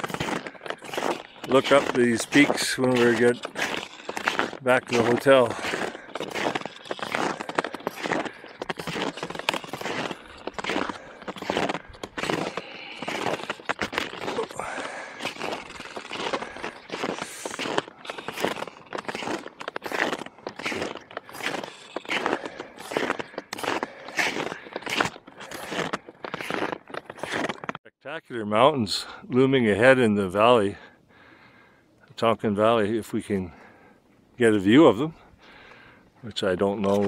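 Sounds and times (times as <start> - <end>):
snowshoes crunching in snow: 0.0 - 27.7.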